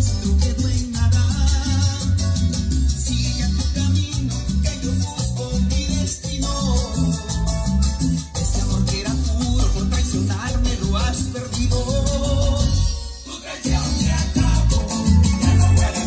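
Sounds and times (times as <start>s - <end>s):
salsa music with heavy bass: 0.0s - 16.0s.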